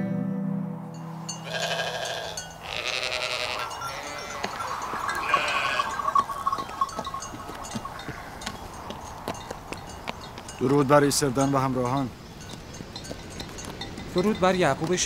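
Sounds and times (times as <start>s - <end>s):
sheep bleating: 1.4s - 6.4s
hooves clicking on hard ground: 2.4s - 15.0s.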